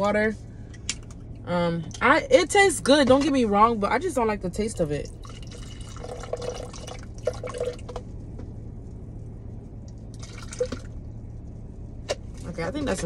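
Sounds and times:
steady low hum: 0:00.0 - 0:13.0
water pouring into plastic cup: 0:05.2 - 0:08.0.

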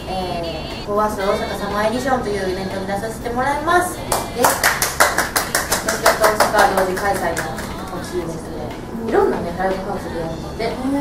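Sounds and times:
voices: 0:00.0 - 0:04.8
woman's voice: 0:00.0 - 0:04.8, 0:05.8 - 0:11.0
people clapping: 0:04.1 - 0:08.1.

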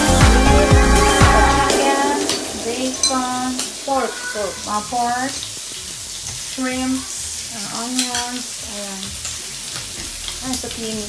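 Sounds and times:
food sizzling on cooker: 0:01.6 - 0:11.0.

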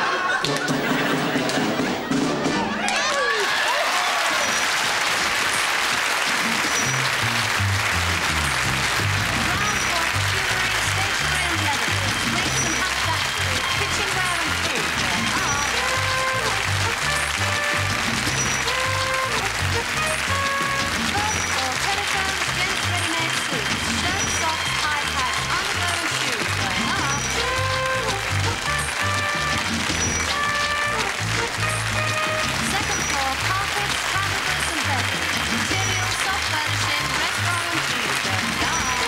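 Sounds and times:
lively music with bass line: 0:00.0 - 0:02.8, 0:06.2 - 0:39.0
audience applause: 0:00.0 - 0:39.0.

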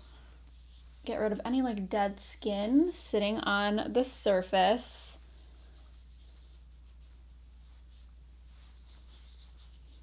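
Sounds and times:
pad rubbing across skin: 0:00.0 - 0:01.8, 0:05.2 - 0:10.0.

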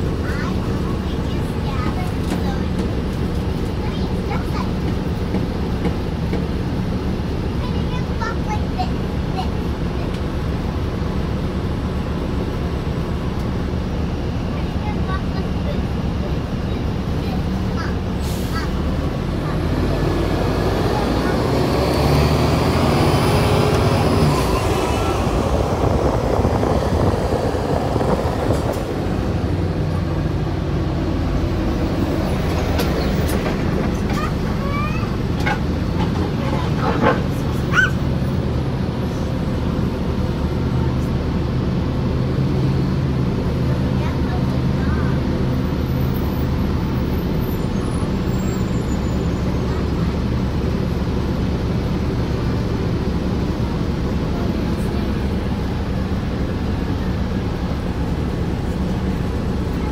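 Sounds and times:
bus engine drone: 0:00.0 - 0:59.9.

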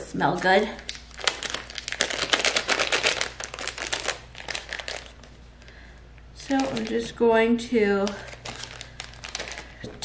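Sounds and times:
plastic bag crinkling: 0:00.2 - 0:05.8, 0:06.4 - 0:07.2, 0:07.9 - 0:10.0.

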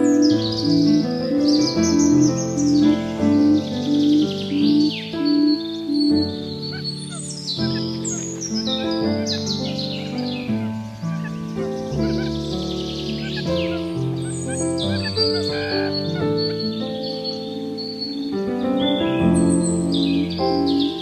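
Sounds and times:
soft instrumental music: 0:00.0 - 0:21.0
songbirds chirping and whistling: 0:00.0 - 0:21.0.

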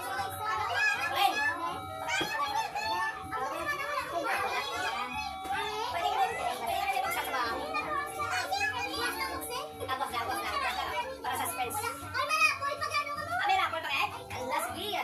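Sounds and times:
adults and children chattering: 0:00.0 - 0:15.0.

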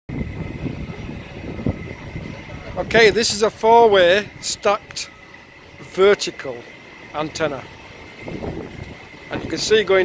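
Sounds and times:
faint high whine: 0:00.1 - 0:10.0
low outdoor rumble: 0:00.1 - 0:10.0.

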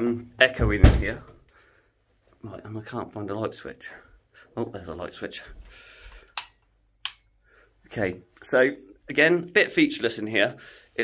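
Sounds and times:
light switch clicks: 0:06.4 - 0:07.3.

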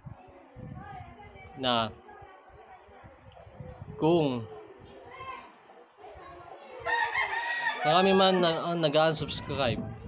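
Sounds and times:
faint children's voices: 0:00.0 - 0:10.0
rooster crowing: 0:06.9 - 0:08.7.

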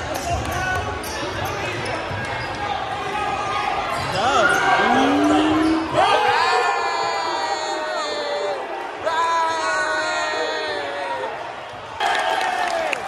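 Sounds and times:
crowd chatter in echoing hall: 0:00.0 - 0:13.0
spectators shouting and whooping: 0:03.1 - 0:13.0.

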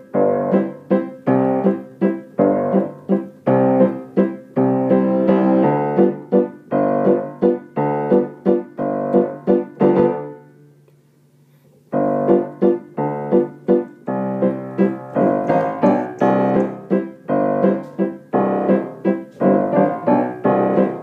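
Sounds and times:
piano chords: 0:00.0 - 0:10.8, 0:11.9 - 0:21.0.

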